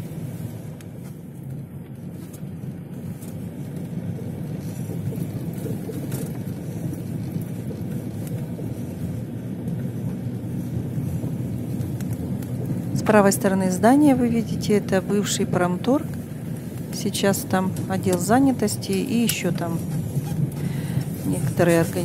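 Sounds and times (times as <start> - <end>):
car driving rumble from inside: 0.1 - 22.0.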